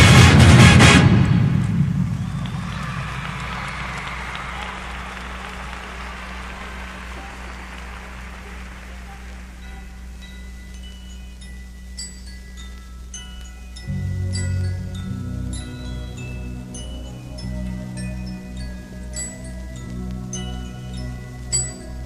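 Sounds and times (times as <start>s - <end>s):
crowd applause and cheering: 0.0s - 10.4s, 13.9s - 22.0s
marching band chord: 0.0s - 11.0s, 13.8s - 22.0s
low hum: 0.0s - 22.0s
mallet percussion notes: 4.6s - 22.0s.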